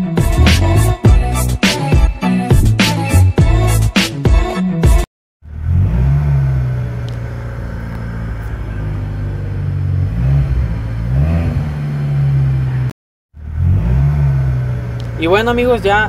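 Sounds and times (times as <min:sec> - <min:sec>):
engine revving: 0:00.1 - 0:01.0, 0:05.4 - 0:16.0
car engine idling: 0:05.4 - 0:13.7, 0:14.3 - 0:16.0.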